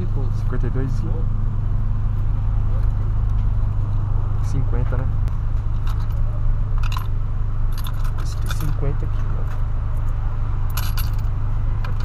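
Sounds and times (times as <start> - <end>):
car engine idling: 0.0 - 12.0
coins jingling and clinking: 7.7 - 8.8, 10.7 - 11.3.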